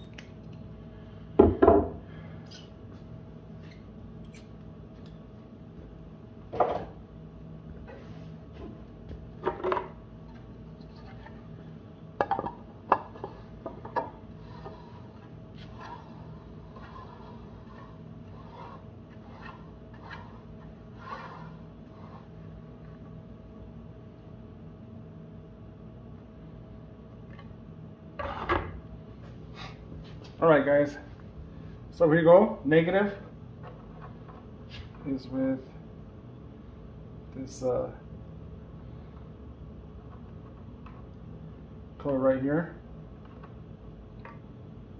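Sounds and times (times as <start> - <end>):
steady low hum: 0.0 - 44.9.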